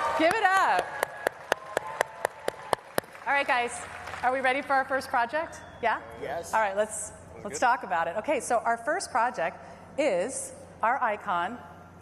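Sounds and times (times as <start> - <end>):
steady hand claps: 0.0 - 4.2
faint audience applause: 0.0 - 4.4.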